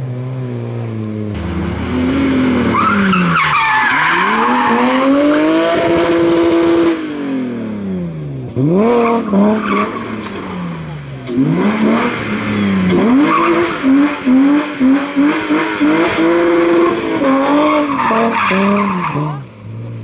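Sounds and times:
car engine revving: 0.0s - 20.0s
tyres squealing: 2.6s - 5.5s.

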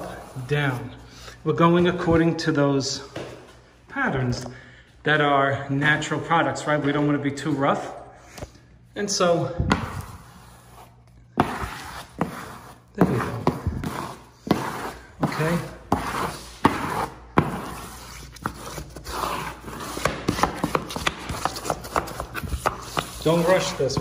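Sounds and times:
smoother rubbing over wallpaper: 9.9s - 24.0s.

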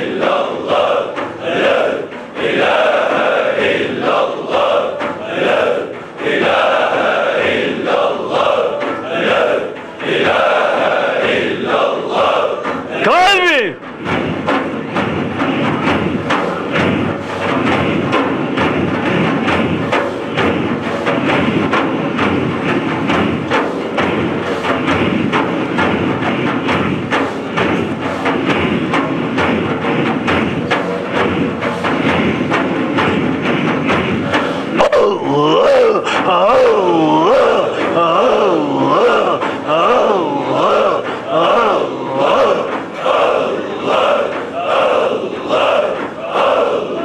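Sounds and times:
men chanting rhythmically: 0.0s - 14.3s, 32.0s - 47.0s
large frame drums beaten: 0.0s - 47.0s.

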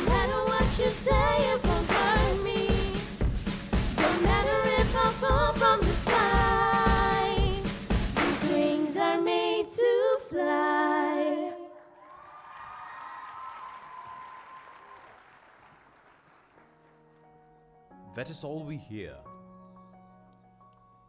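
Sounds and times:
backing track: 0.0s - 9.2s
girls singing pop song: 0.0s - 12.0s
audience applause: 12.0s - 17.1s.

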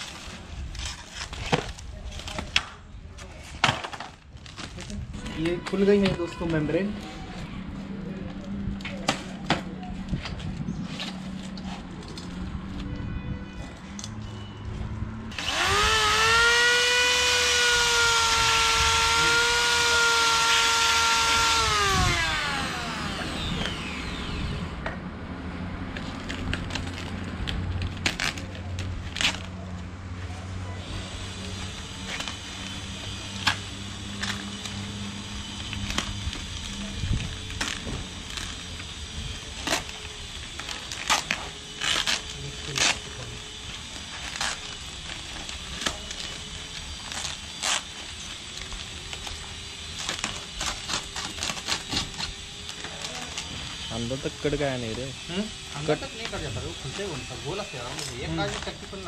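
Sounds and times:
power tool motor whining: 15.3s - 24.9s, 30.8s - 59.0s.

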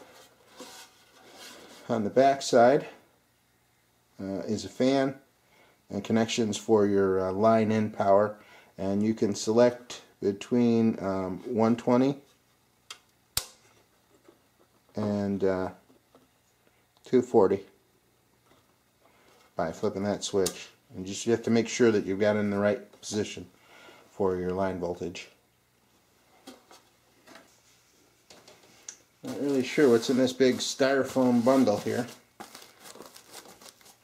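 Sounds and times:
cardboard packaging rustling: 0.0s - 1.9s, 29.2s - 34.0s.

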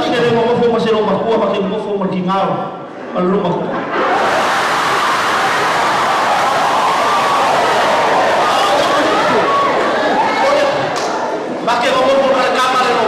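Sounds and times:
audience laughing: 2.9s - 5.9s.

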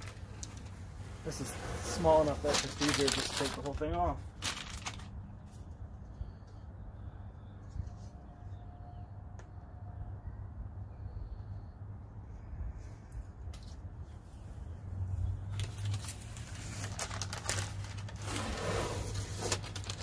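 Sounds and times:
paper backing peeling and rustling: 0.0s - 5.6s, 15.5s - 20.0s.

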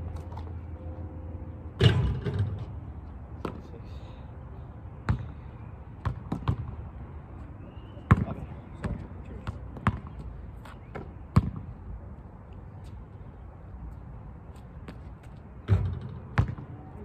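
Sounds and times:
basketball bouncing on asphalt: 5.0s - 6.9s, 8.1s - 11.8s, 14.8s - 16.8s.

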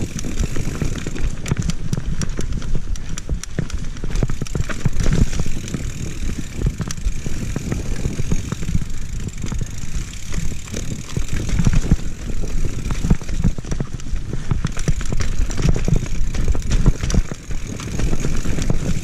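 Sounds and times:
bike rattling over roots: 0.0s - 19.0s
bike tyres rumbling on dirt: 0.0s - 19.0s.

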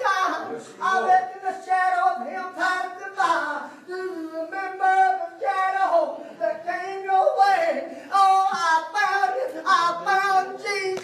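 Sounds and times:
unaccompanied singing voices: 0.0s - 11.0s.

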